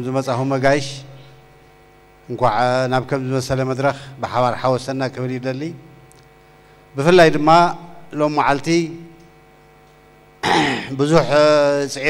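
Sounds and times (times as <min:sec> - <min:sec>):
electrical mains hum: 0:00.0 - 0:12.0
man speaking: 0:02.3 - 0:05.9, 0:07.0 - 0:09.1, 0:10.7 - 0:12.0.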